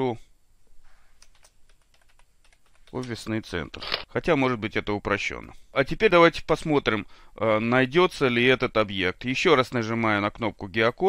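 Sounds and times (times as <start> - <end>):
keyboard typing: 1.2 - 4.1.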